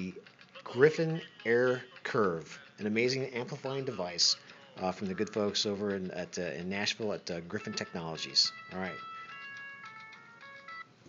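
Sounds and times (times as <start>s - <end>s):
tinny music from phone speaker: 0.0s - 11.0s.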